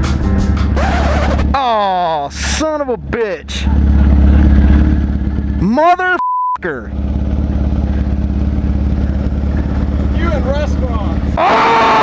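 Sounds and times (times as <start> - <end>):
motorcycle engine idling: 0.8 - 6.0, 6.7 - 11.4.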